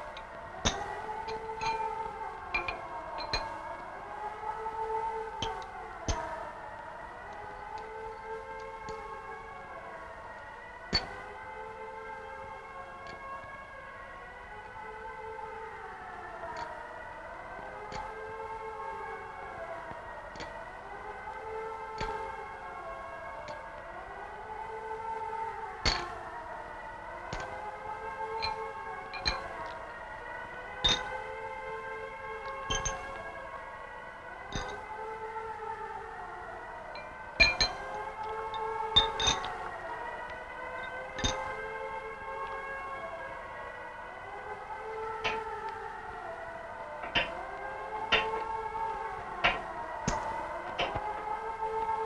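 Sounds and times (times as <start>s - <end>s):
siren-like wail: 0.0s - 52.0s.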